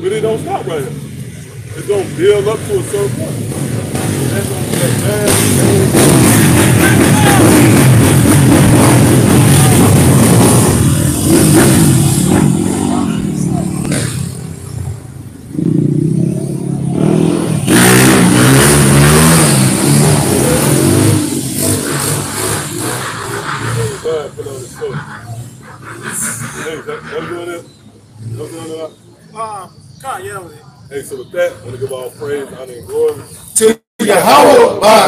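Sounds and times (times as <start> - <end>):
vehicle engine revving loudly: 0.0 - 28.9.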